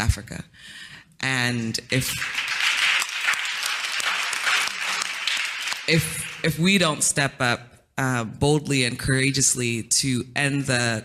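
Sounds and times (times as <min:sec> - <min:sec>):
audience applauding: 0:01.8 - 0:06.6.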